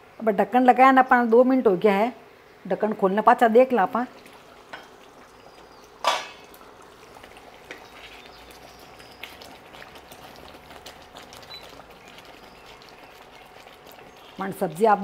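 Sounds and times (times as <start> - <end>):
curry bubbling and popping: 2.9 - 15.0
pan lid clinking: 6.0 - 6.4.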